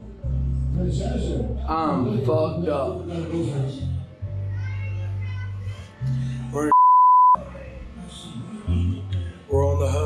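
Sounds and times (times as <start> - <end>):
censor bleep: 6.7 - 7.4.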